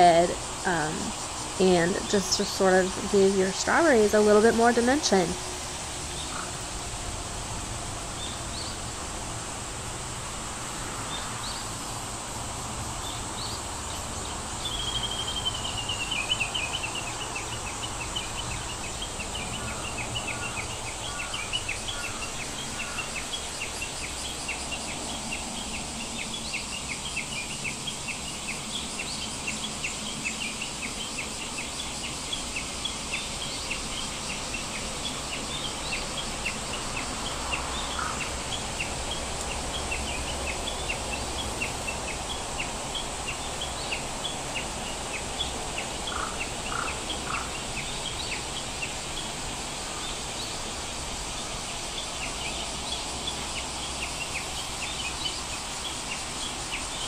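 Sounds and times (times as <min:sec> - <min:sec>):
birds chirping: 0:00.0 - 0:06.7, 0:13.0 - 0:57.0
steady background hiss: 0:00.0 - 0:57.0.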